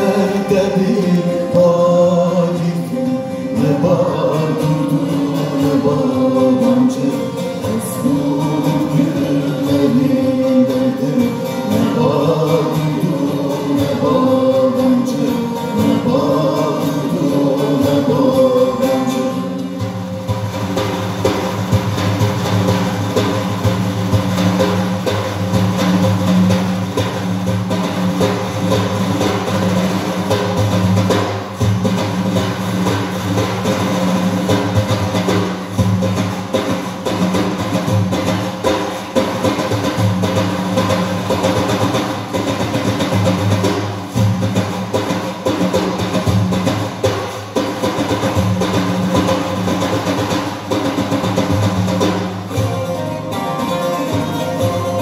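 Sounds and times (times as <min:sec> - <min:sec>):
frame drums struck rhythmically: 0:00.0 - 0:55.0
held instrument tones: 0:52.5 - 0:55.0.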